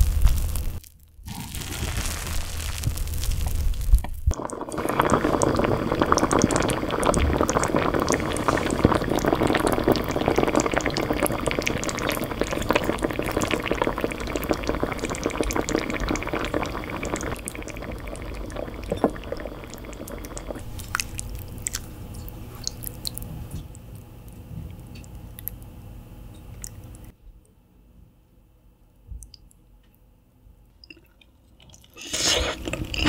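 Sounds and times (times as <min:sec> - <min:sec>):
stew bubbling in a pot: 0:00.0 - 0:25.6, 0:30.9 - 0:33.0.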